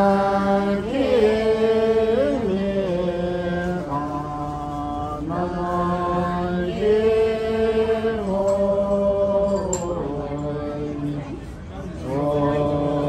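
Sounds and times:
voices chanting a prayer: 0:00.0 - 0:13.0.

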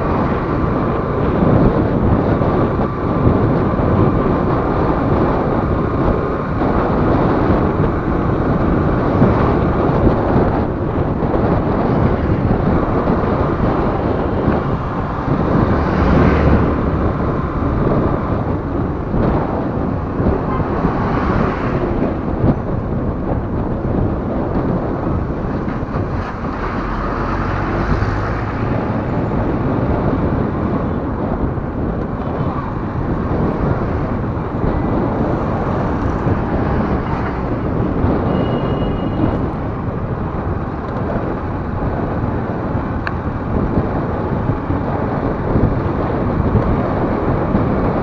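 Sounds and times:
passing traffic: 0:00.0 - 0:48.0
wind and road noise: 0:00.0 - 0:48.0.

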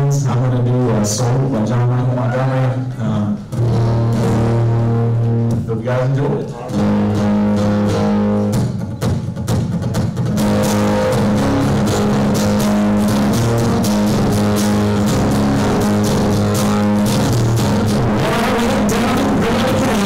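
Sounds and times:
acoustic guitar strumming: 0:00.0 - 0:20.0.

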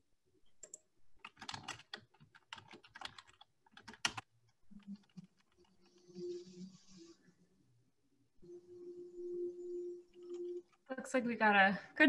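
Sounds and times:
keyboard typing: 0:00.5 - 0:07.0, 0:09.6 - 0:11.1.

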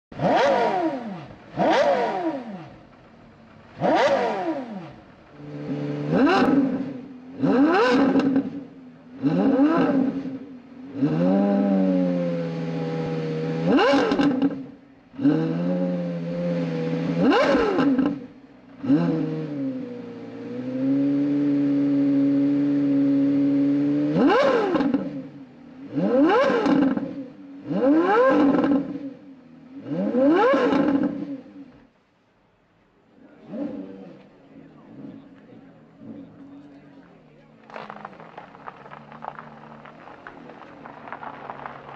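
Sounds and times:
sports car engine revving: 0:00.1 - 0:31.8, 0:33.2 - 0:41.9.

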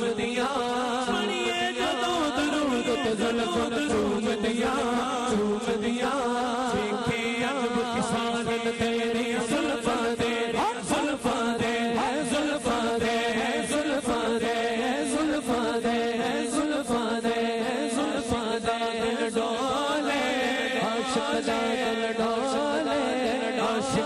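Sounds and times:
man singing into microphone: 0:00.0 - 0:24.0
men chanting drone: 0:00.0 - 0:24.0.

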